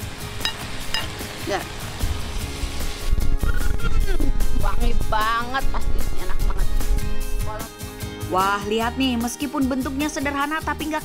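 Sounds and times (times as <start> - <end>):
background music: 0.0 - 11.0
metal spatula clinking on plate: 0.4 - 1.2
low rumble: 3.2 - 7.6.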